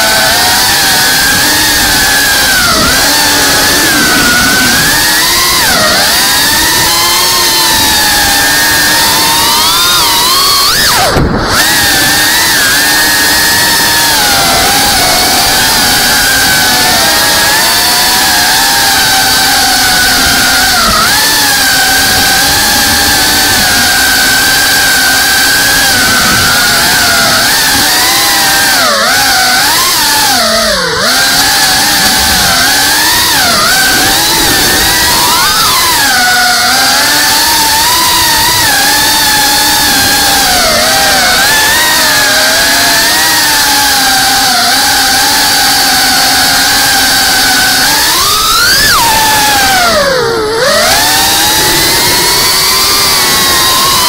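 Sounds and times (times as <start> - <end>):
quadcopter motors whining: 0.0 - 54.0.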